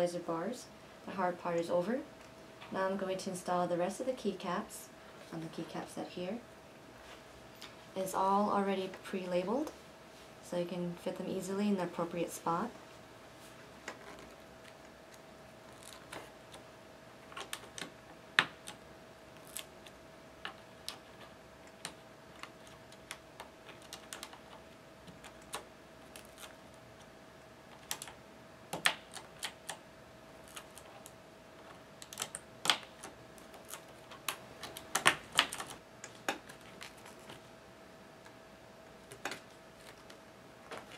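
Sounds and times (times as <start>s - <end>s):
faint steady hum: 0.0s - 40.9s.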